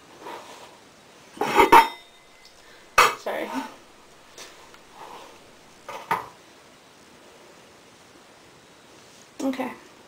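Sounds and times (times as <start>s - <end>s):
faint room hiss: 0.0s - 10.0s
soft brushing: 2.3s - 5.8s.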